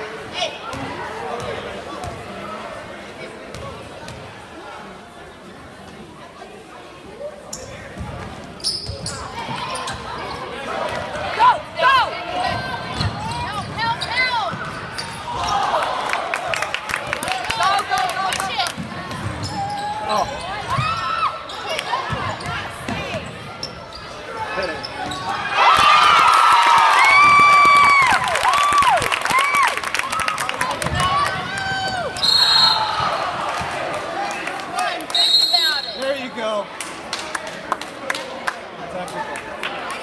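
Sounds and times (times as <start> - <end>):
spectators' voices: 0.0 - 40.0
sneakers squeaking on gym floor: 7.5 - 10.6, 12.5 - 15.4, 19.1 - 25.6.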